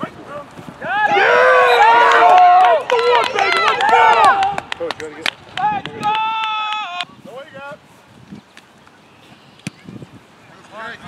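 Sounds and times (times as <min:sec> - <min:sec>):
men shouting and cheering: 0:00.8 - 0:07.6
sharp claps: 0:02.1 - 0:07.1.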